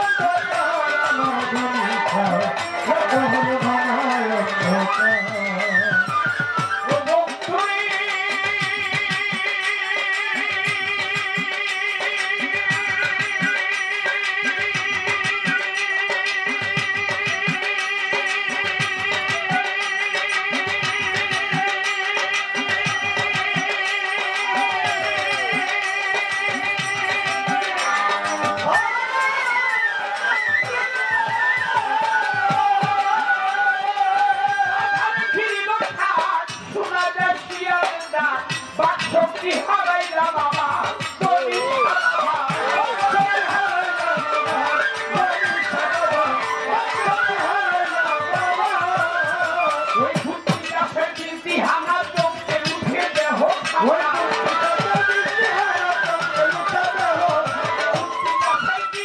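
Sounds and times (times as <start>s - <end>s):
violin melody: 0.0s - 7.8s, 24.2s - 35.5s, 41.4s - 50.1s.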